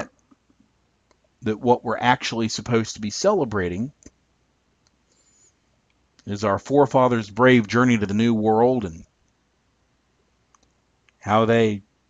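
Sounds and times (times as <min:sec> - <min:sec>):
faint small clicks: 0:00.1 - 0:01.3, 0:04.0 - 0:04.2, 0:04.8 - 0:05.2, 0:05.8 - 0:06.3, 0:09.1 - 0:09.4, 0:10.5 - 0:11.2.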